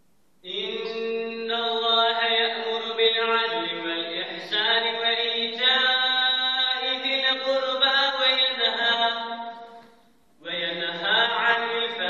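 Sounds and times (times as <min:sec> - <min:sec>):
man chanting recitation: 0:00.4 - 0:09.6, 0:10.4 - 0:12.0.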